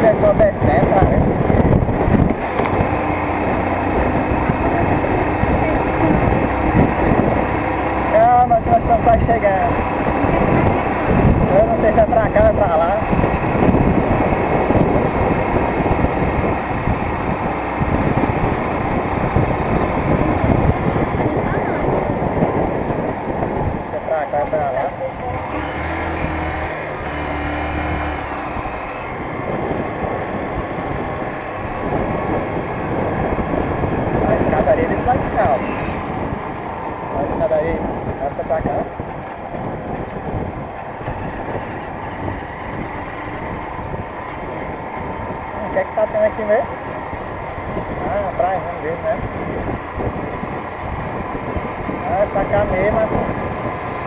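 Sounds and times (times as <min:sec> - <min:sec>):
wind buffeting microphone: 0:00.0 - 0:54.0
motorcycle engine running: 0:00.9 - 0:24.1, 0:24.7 - 0:54.0.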